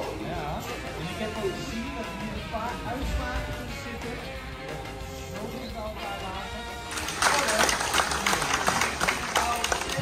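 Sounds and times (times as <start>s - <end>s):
audience clapping: 6.8s - 10.0s.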